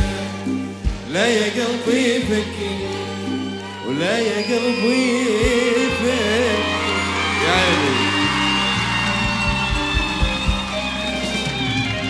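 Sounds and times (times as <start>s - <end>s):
live band playing pop music: 0.0s - 12.0s.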